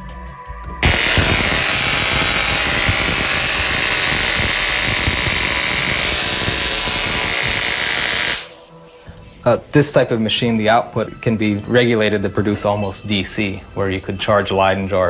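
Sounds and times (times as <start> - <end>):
electric sparks buzzing crackle: 0.8 - 8.6.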